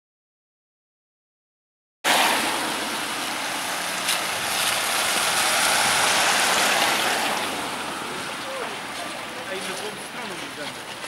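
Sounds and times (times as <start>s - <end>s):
rain hissing on street: 2.1s - 11.0s.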